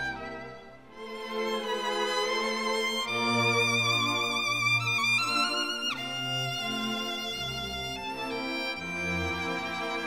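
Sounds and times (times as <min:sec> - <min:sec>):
violin melody with vibrato: 0:00.0 - 0:10.0.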